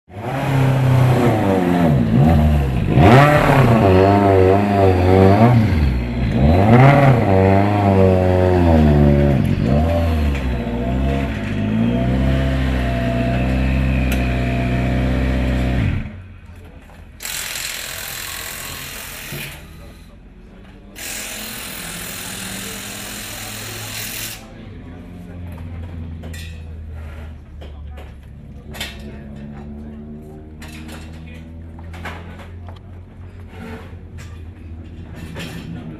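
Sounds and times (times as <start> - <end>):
rally car engine revving: 0.1 - 16.2, 21.4 - 35.9.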